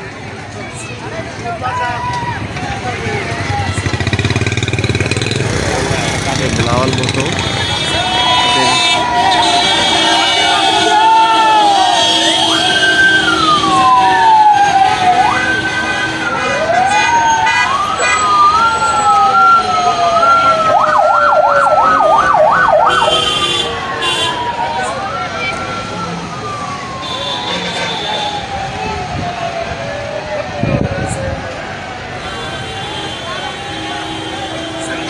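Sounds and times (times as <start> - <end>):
sirens wailing: 1.4 - 35.0.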